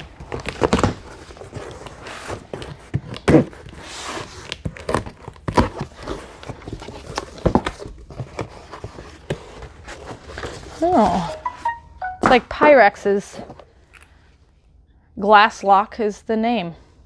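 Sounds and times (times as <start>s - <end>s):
cardboard tearing and scraping: 0.0s - 11.5s
cardboard rustling: 0.0s - 12.4s.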